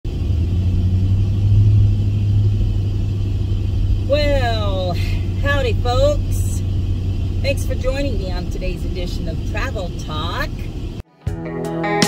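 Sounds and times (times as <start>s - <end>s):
vehicle engine rumble from cab: 0.0s - 11.0s.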